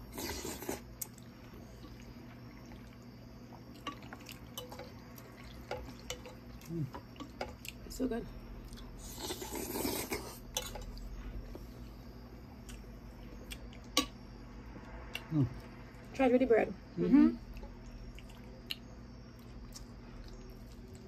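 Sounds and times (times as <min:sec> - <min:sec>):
slurping and eating sounds: 0:00.0 - 0:01.2, 0:09.0 - 0:10.4.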